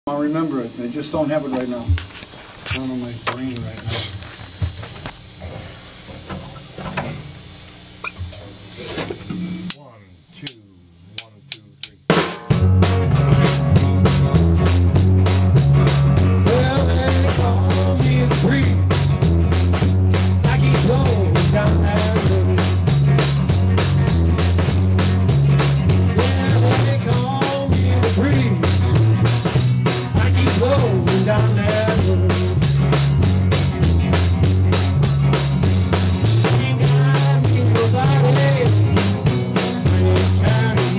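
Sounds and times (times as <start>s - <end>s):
count-in clicks: 9.7s - 12.1s
rock band playing: 11.5s - 40.9s.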